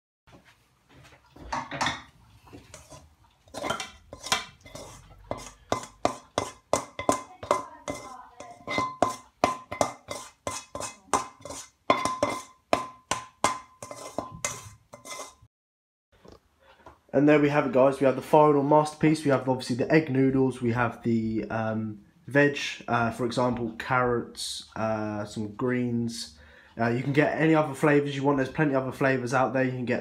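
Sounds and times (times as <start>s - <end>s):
spatula scraping steel wok: 1.5s - 15.5s.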